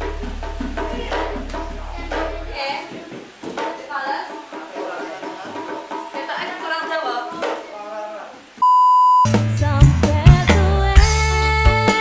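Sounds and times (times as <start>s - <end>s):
band with hand drums and keyboard: 0.0s - 3.8s, 9.3s - 12.0s
steady beep tone: 8.6s - 9.4s.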